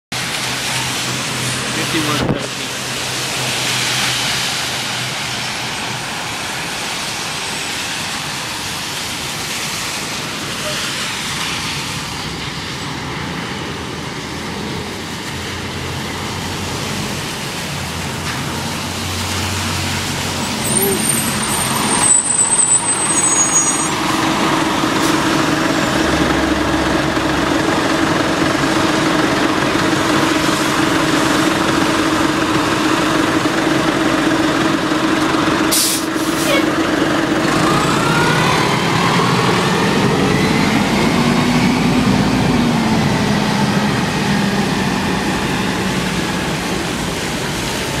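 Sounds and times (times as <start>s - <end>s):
bus diesel engine running: 0.1s - 48.0s
wet road traffic noise: 0.1s - 48.0s
air brake hiss: 35.7s - 36.7s.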